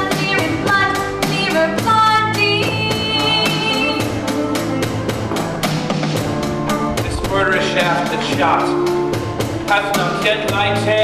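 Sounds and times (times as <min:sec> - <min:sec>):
rock band playing: 0:03.9 - 0:10.9
drum-kit beat: 0:05.0 - 0:10.6.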